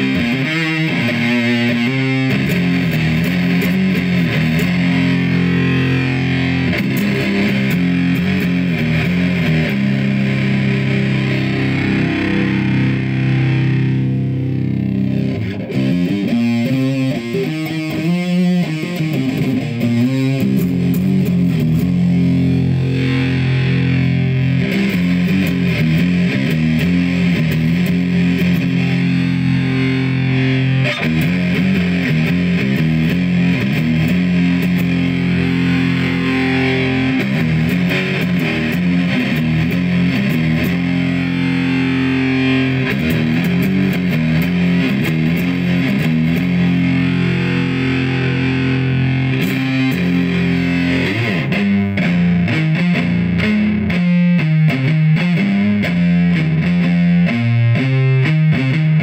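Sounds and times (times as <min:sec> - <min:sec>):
fuzz-distorted electric guitar: 0:00.0 - 0:59.0.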